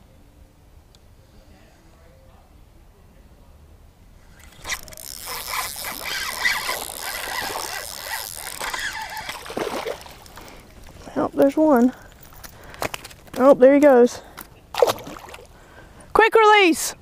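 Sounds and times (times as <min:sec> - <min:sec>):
jacket rubbing on microphone: 0:04.3 - 0:09.5.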